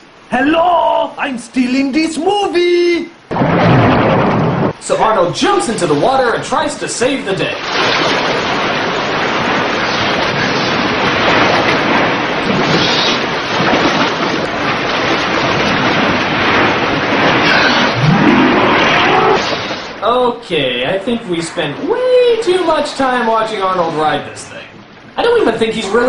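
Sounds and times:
heavy splashing water: 7.4s - 20.0s
short rising cry: 17.5s - 19.7s.

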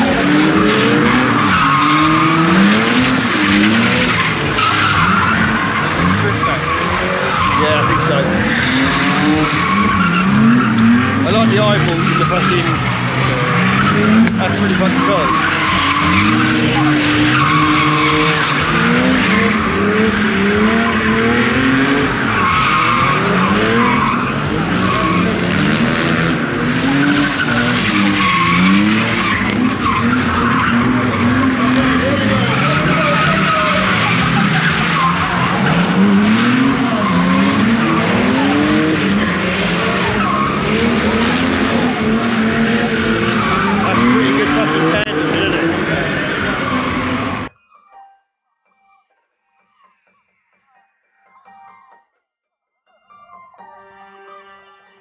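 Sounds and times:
tyres squealing: 0.0s - 45.4s
car engines revving: 0.0s - 47.5s.

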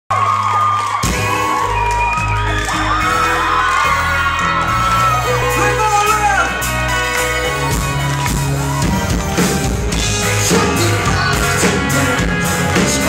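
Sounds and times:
crowd whooping: 0.1s - 13.0s
live rock band playing: 0.2s - 13.0s.

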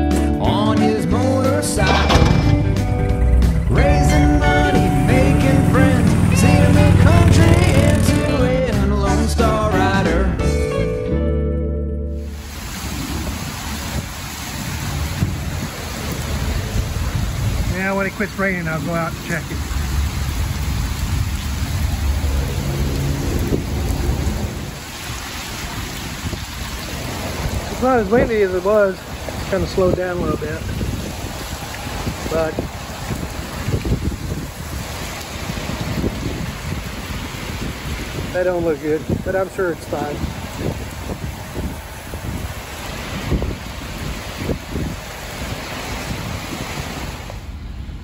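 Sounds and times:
heavy rain: 0.8s - 9.8s, 12.2s - 48.0s
low rumble: 1.8s - 8.7s, 19.6s - 24.8s
wind gusting against microphone: 12.3s - 48.0s.

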